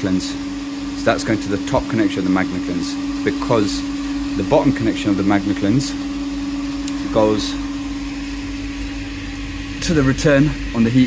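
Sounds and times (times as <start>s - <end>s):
pump electric hum: 0.0s - 11.0s.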